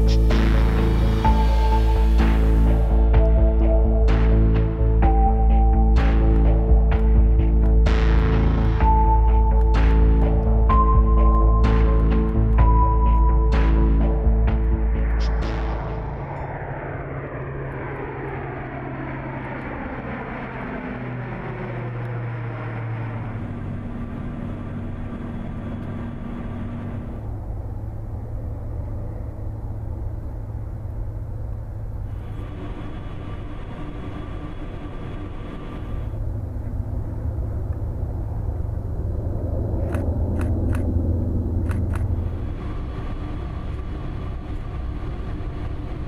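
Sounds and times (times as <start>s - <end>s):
turboprop plane flying past: 14.0s - 46.0s.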